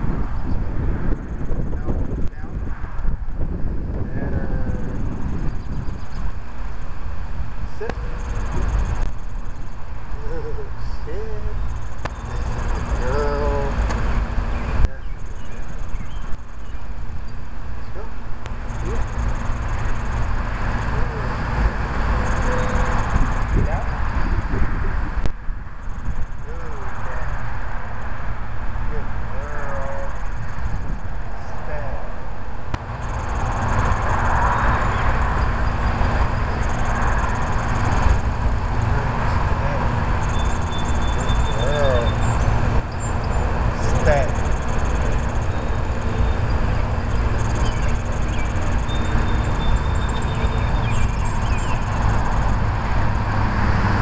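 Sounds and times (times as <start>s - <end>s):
low outdoor rumble: 0.0s - 54.0s.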